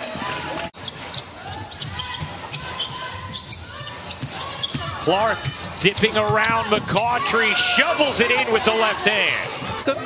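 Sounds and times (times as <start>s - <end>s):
echoing voices: 1.4s - 10.0s
basketball bouncing on hardwood: 1.8s - 7.1s.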